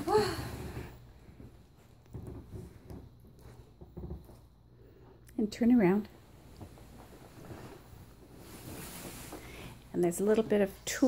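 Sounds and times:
satin skirt rustling: 6.2s - 11.0s.

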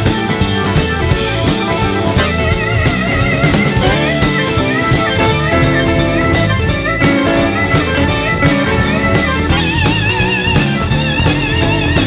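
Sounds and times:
blues band playing: 0.0s - 12.0s
drum kit beat: 0.0s - 12.0s
electric guitar: 0.0s - 12.0s
keyboards: 0.0s - 12.0s.

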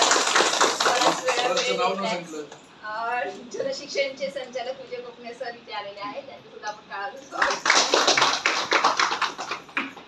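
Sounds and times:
small group applauding: 0.0s - 2.1s, 7.3s - 10.0s.

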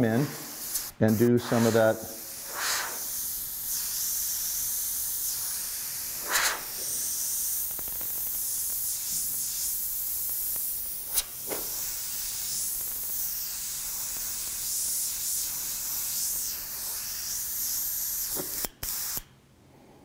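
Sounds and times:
airbrush puffs: 0.0s - 19.2s
airbrush hissing: 0.0s - 19.3s.

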